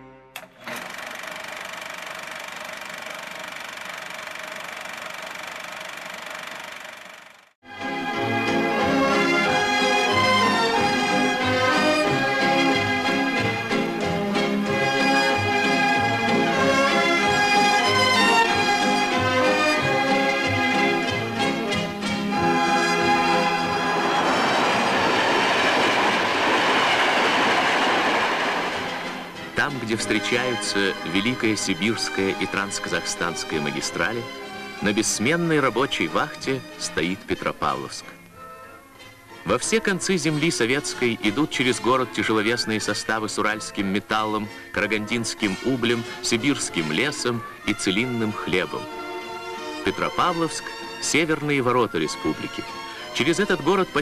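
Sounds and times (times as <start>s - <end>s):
film projector clattering: 0.4s - 7.5s
train wheels rushing on rails: 21.7s - 32.9s.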